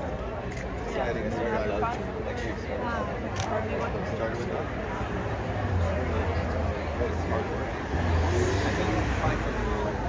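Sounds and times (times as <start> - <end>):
low street traffic rumble: 0.0 - 10.0.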